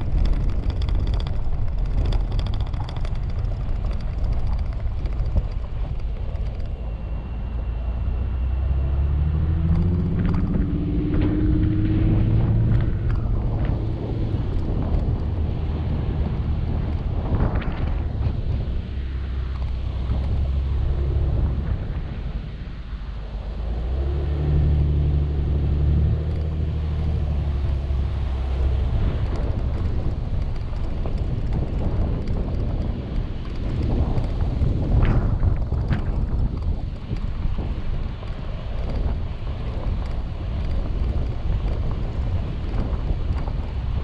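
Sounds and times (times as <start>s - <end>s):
vehicle driving on gravel: 0.0s - 44.0s
wind buffeting microphone: 0.0s - 44.0s.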